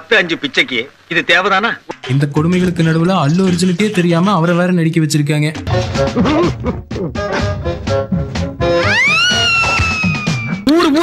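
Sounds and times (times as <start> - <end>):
high-pitched wailing tone: 8.8 - 10.6.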